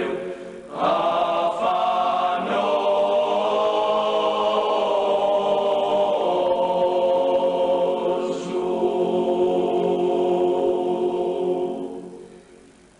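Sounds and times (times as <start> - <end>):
male choir singing unaccompanied: 0.0 - 12.3.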